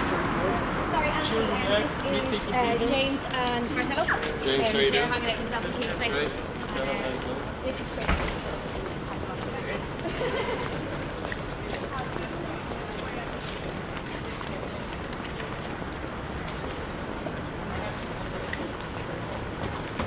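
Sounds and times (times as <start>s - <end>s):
distant traffic: 0.0s - 20.0s
faint voices of passers-by: 0.0s - 20.0s
footsteps on pavement: 8.2s - 20.0s.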